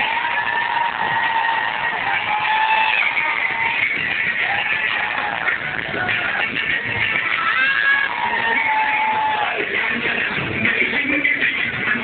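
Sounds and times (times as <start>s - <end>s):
pop music with singing: 0.0s - 12.0s.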